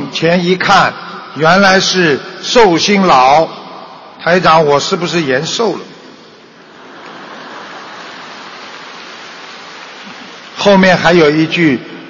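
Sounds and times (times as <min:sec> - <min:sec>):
audience applause: 0:06.6 - 0:11.2.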